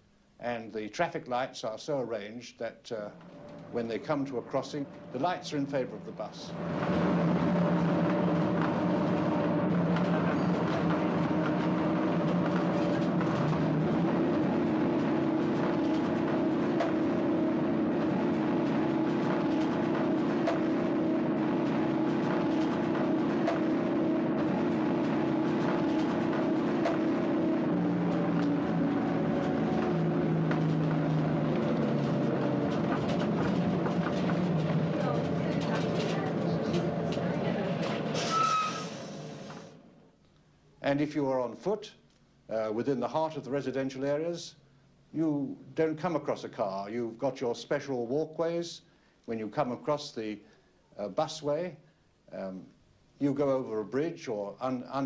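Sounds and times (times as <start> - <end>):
bus engine running: 3.2 - 40.0.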